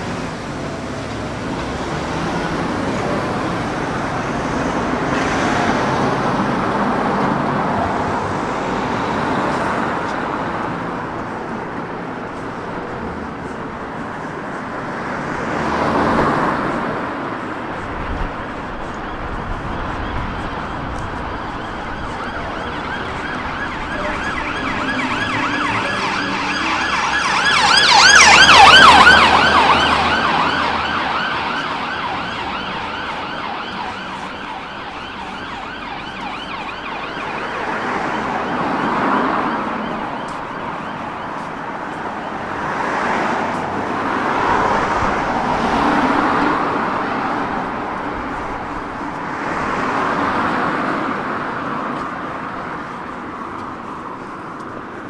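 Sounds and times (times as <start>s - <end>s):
cars passing: 0.0s - 55.0s
emergency vehicle siren wailing: 0.0s - 55.0s.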